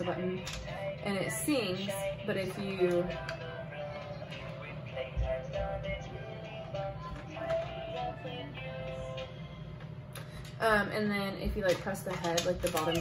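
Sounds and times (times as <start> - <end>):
musical toy playing sung song: 0.0 - 9.6.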